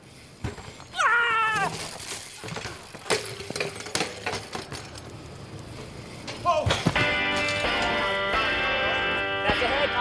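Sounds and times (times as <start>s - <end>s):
person yelling: 1.0s - 1.8s.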